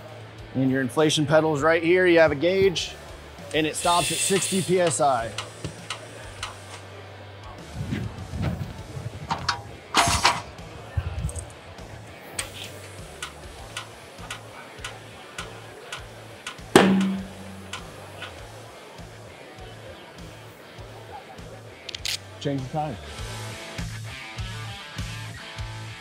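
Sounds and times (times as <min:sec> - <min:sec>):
background music with beat: 0:02.6 - 0:21.9, 0:23.0 - 0:26.0
air hissing: 0:03.5 - 0:06.8, 0:16.8 - 0:18.4
tire bead pop: 0:04.4 - 0:06.8, 0:16.5 - 0:18.4.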